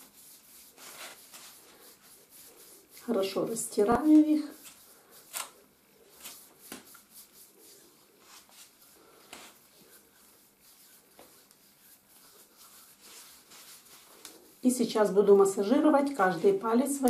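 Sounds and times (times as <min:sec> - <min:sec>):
hands rubbing skin: 0:00.0 - 0:17.0.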